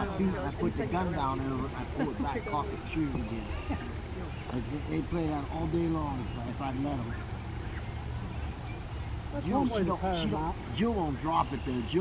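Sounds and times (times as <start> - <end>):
steady low rumble: 0.0 - 11.8
faint bird calls: 0.0 - 12.0.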